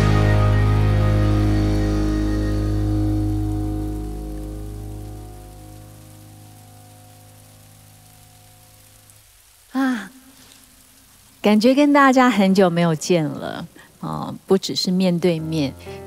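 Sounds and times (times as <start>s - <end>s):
electric guitar and bass chord: 0.0s - 8.5s
rain pattering: 0.0s - 16.0s
woman's voice: 9.8s - 10.2s, 11.4s - 16.0s.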